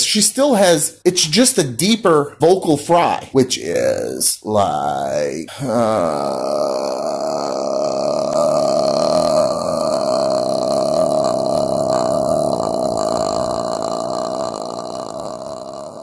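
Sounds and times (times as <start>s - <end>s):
man's creaky vocal fry: 3.6s - 16.0s.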